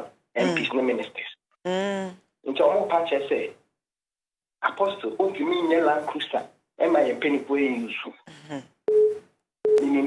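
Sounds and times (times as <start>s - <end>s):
person speaking: 0.4s - 3.5s, 4.6s - 8.7s, 9.8s - 10.0s
telephone line beeps: 8.9s - 10.0s.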